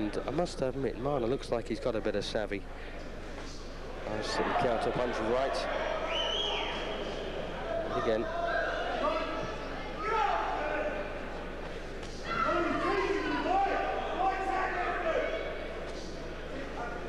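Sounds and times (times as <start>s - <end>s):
low electrical hum: 0.0s - 17.0s
men calling out in echoing hall: 4.1s - 17.0s.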